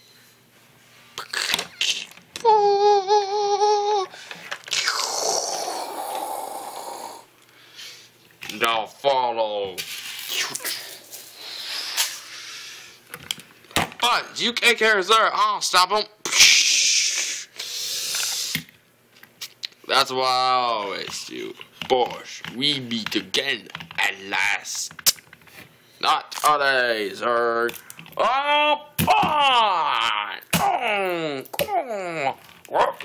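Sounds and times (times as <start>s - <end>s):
child making vocal sound effects: 1.2s - 4.1s, 4.7s - 7.2s
breathy vocal hiss: 4.0s - 8.2s, 16.3s - 18.6s.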